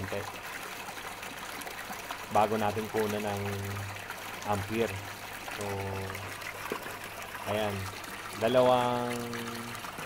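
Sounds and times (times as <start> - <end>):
water gushing from pipe into tank: 0.0 - 10.0.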